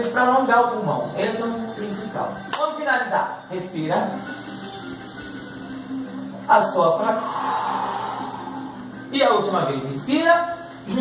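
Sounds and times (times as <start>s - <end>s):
slow breath in: 4.2s - 6.2s, 7.2s - 9.1s.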